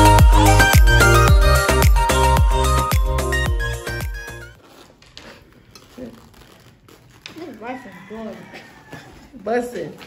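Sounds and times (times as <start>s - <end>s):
background music: 0.0s - 4.6s
foam containers crinkling and clicking: 4.8s - 10.0s.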